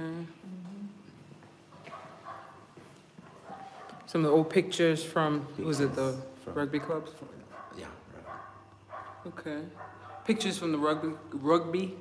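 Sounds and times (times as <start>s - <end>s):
footsteps on tiled floor: 1.0s - 4.1s.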